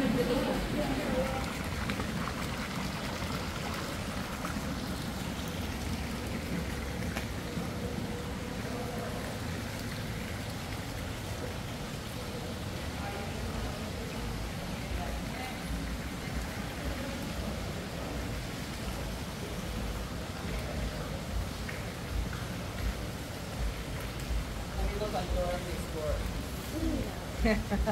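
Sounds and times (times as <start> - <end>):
steady rushing ambient noise: 0.0 - 27.9.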